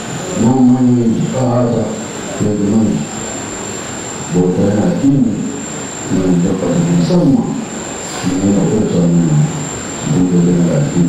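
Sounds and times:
man chanting into a microphone: 0.0s - 3.1s, 6.1s - 7.6s, 8.2s - 11.0s
faint high-pitched whine: 0.0s - 11.0s.

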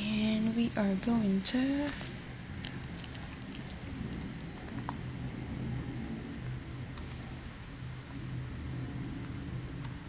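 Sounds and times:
low hum: 0.0s - 10.0s
room noise hiss: 0.0s - 10.0s.

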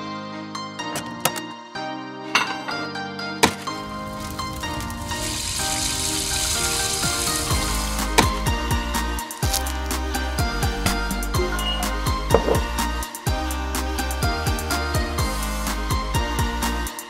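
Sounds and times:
light background music: 0.0s - 17.0s
frying pan sizzle effect: 3.8s - 8.8s
kick drum: 10.4s - 13.4s.

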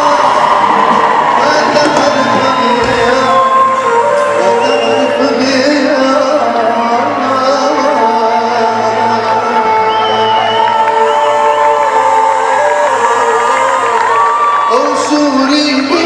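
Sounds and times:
crowd cheering and singing along: 0.0s - 16.0s
live band music: 0.0s - 16.0s.

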